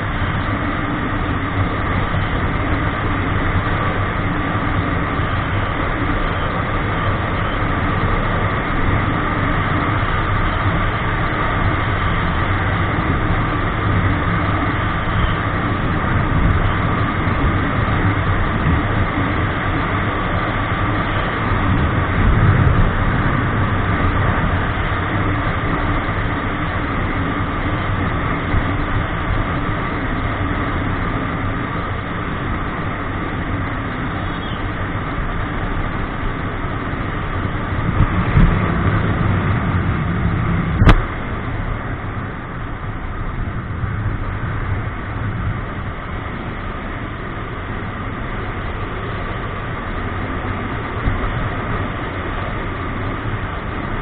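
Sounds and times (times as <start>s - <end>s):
motorcycle engine drone: 0.0s - 54.0s
wind noise: 0.0s - 54.0s.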